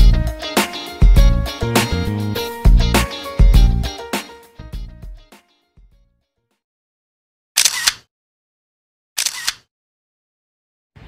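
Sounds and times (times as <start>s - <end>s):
camera shutter click: 7.6s - 8.0s, 9.2s - 9.7s.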